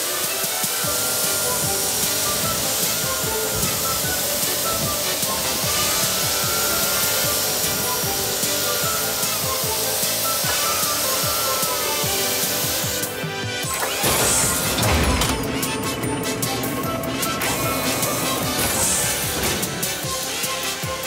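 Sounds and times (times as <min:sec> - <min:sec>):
background music: 0:00.0 - 0:21.0
spray jets hissing: 0:00.0 - 0:21.0.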